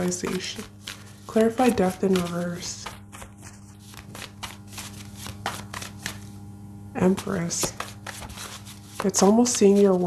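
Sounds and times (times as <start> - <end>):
cards being shuffled: 0.0 - 6.4, 7.1 - 10.0.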